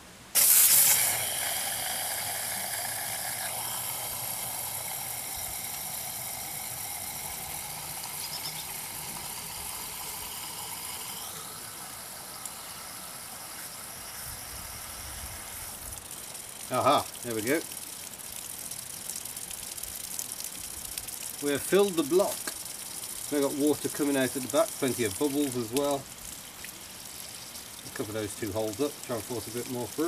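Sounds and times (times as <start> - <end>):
hose water hissing: 0.0 - 30.0.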